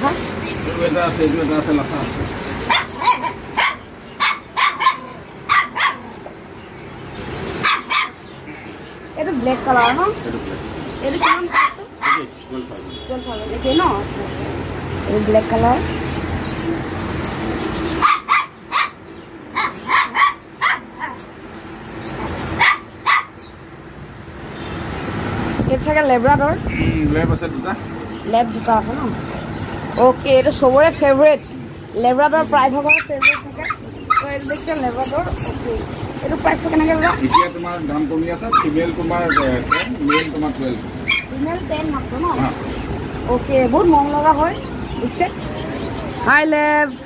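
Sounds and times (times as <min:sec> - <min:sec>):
puppy yapping: 0:02.6 - 0:06.2, 0:07.6 - 0:08.2, 0:11.2 - 0:12.4, 0:18.0 - 0:21.3, 0:22.6 - 0:23.5, 0:32.9 - 0:34.7, 0:37.1 - 0:37.7, 0:38.5 - 0:40.4, 0:41.0 - 0:41.4.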